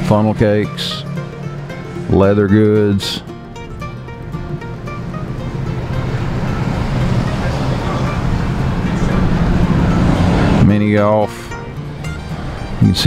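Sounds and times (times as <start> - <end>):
quiet background music: 0.0 - 13.0
road noise from a car: 0.0 - 13.0.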